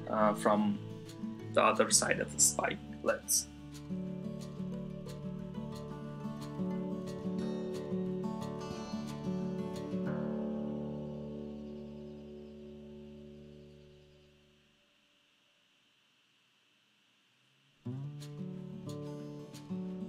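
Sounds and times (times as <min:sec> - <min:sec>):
acoustic guitar music: 0:00.0 - 0:14.5, 0:17.8 - 0:20.0.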